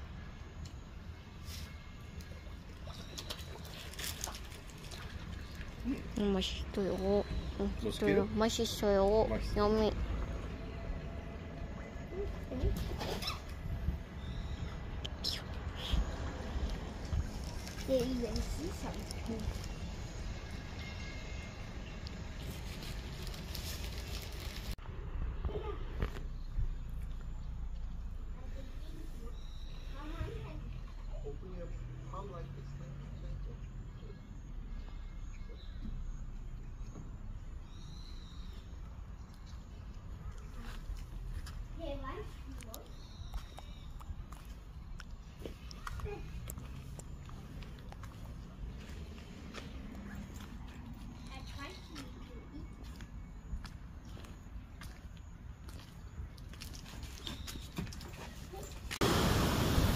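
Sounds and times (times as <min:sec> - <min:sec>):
wind rumble on microphone: 0:12.5 - 0:17.9
footsteps on brick paving: 0:40.4 - 0:59.0.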